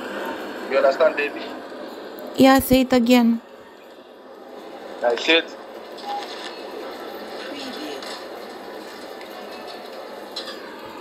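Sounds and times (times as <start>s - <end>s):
murmur of noise over phone line: 0.0s - 11.0s.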